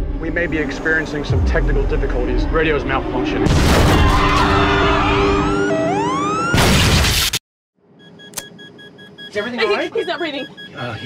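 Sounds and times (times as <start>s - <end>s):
dramatic music with rising sweeps: 0.0s - 6.5s
crash and shatter effect: 1.3s - 5.4s, 6.5s - 7.4s.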